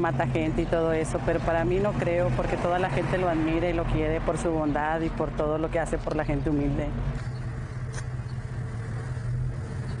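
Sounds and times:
engine hum: 0:00.0 - 0:10.0.

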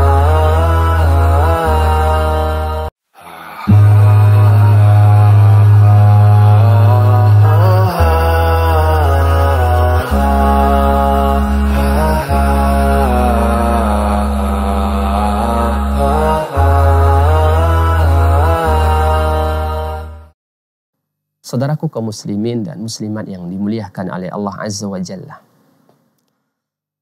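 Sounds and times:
low drone notes: 0:00.0 - 0:02.9, 0:03.6 - 0:20.3
wavering sung melody: 0:03.6 - 0:20.2.

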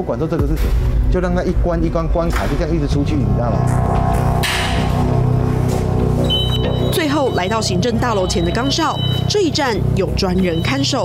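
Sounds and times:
low steady music drone: 0:01.0 - 0:11.0.

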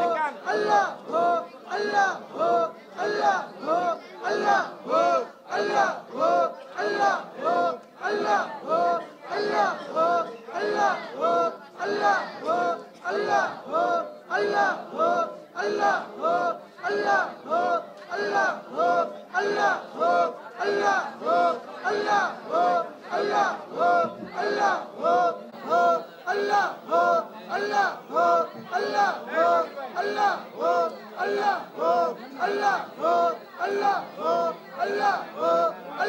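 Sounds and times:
men chanting in unison: 0:00.0 - 0:36.0.

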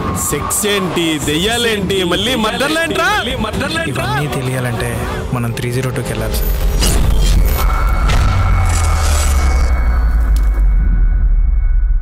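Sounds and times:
cinematic impact hit: 0:07.0 - 0:12.0
deep bass rumble: 0:07.0 - 0:12.0.

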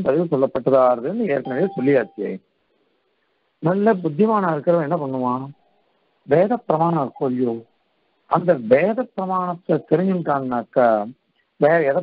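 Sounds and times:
man speaking: 0:00.0 - 0:02.4, 0:03.6 - 0:05.6, 0:06.3 - 0:07.6, 0:08.3 - 0:12.0
short electronic beep: 0:01.4 - 0:02.3.

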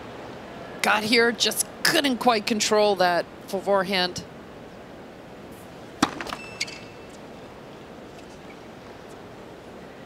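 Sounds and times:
racket hitting tennis ball: 0:06.0 - 0:06.9
shoe squeak: 0:06.2 - 0:07.2.

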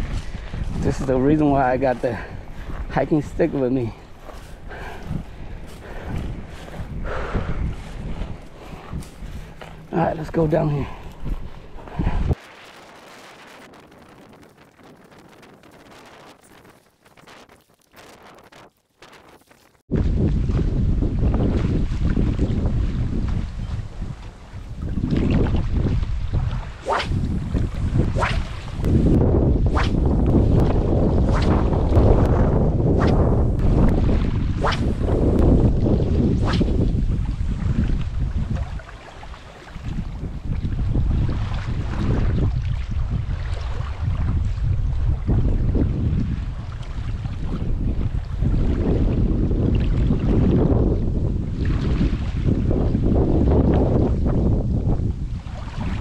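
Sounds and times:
water lapping at shore: 0:00.0 - 0:32.3, 0:33.0 - 0:50.8, 0:51.4 - 0:52.6, 0:55.3 - 0:56.0
wind rumbling on microphone: 0:00.0 - 0:56.0.

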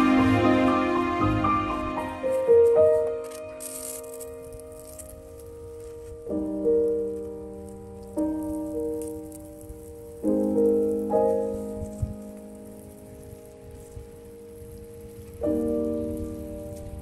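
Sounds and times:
soft sustained chords: 0:00.0 - 0:06.1.

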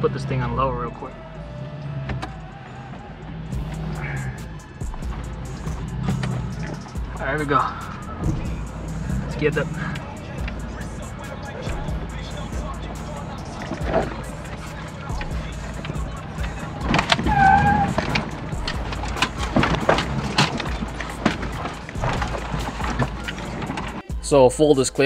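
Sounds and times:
engine drone: 0:00.0 - 0:24.0
knocks and rattles over rocks: 0:07.9 - 0:24.0.

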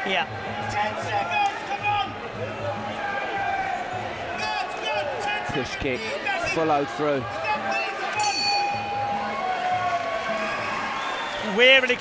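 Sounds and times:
ring bell struck: 0:08.2 - 0:08.9.

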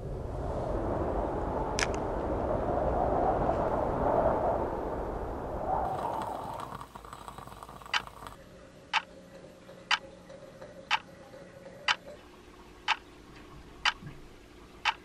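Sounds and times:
clock ticking: 0:06.0 - 0:08.4.

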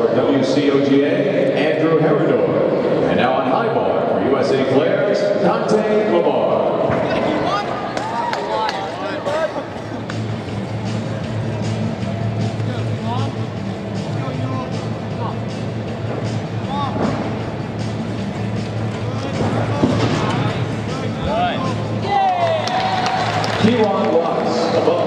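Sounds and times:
background music: 0:00.0 - 0:25.0
crowd chatter: 0:00.0 - 0:25.0.

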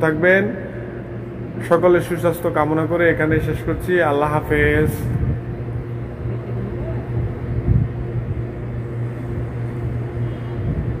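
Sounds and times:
faint rumbling: 0:00.0 - 0:11.0
steady low hum: 0:00.0 - 0:11.0.

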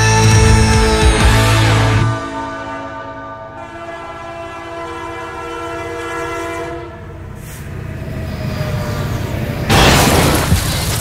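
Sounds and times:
train horn: 0:02.0 - 0:07.6
moving train rumble: 0:03.6 - 0:11.0.

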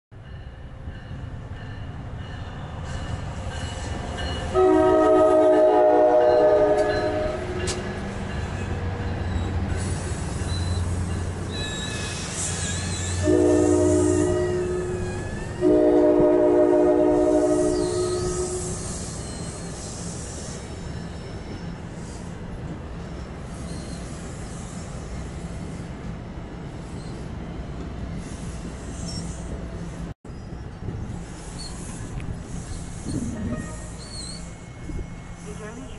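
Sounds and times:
passenger coaches rumbling past: 0:00.2 - 0:35.9
locomotive air horn blasts: 0:04.5 - 0:07.6, 0:13.2 - 0:18.8, 0:33.3 - 0:34.0
faint wheel squeal: 0:09.2 - 0:13.2, 0:17.5 - 0:22.2, 0:23.0 - 0:25.3, 0:26.8 - 0:27.3, 0:28.2 - 0:29.6, 0:31.3 - 0:35.6.

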